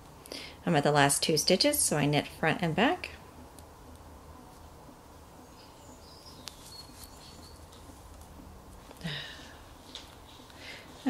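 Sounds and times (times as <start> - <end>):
knitting needles clicking: 6.4 - 9.1.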